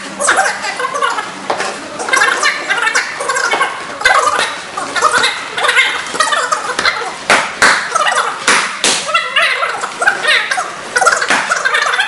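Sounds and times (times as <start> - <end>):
hand slapping strike pad: 7.3 - 9.1.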